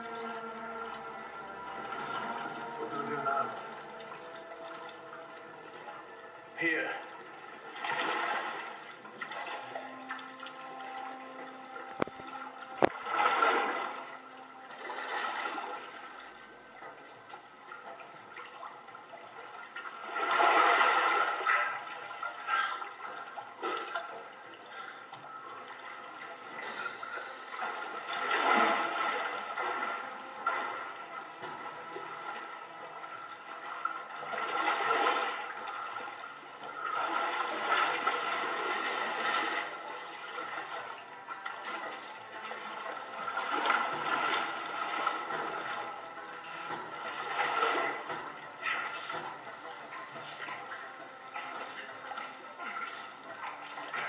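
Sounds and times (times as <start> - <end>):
rushing splashing water: 0.0 - 54.0.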